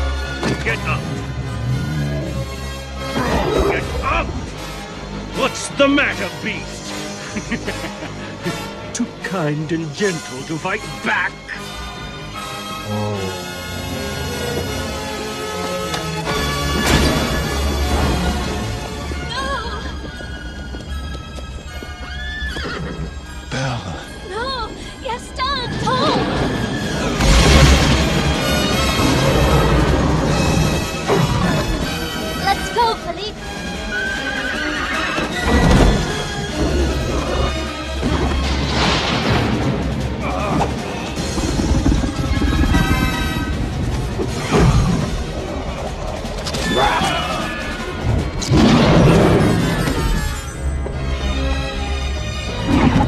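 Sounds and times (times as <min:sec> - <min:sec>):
dramatic film score: 0:00.0 - 0:53.0
hooves clattering: 0:14.2 - 0:23.5, 0:33.6 - 0:53.0
hooves clattering on stone: 0:17.9 - 0:23.3
horse whinnying: 0:22.0 - 0:23.3, 0:33.9 - 0:36.1, 0:46.4 - 0:48.5.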